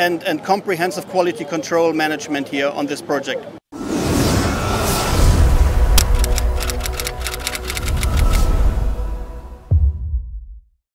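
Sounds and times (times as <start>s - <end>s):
sharp crackling clicks: 6.0s - 8.5s
deep bass ident music: 8.5s - 10.8s.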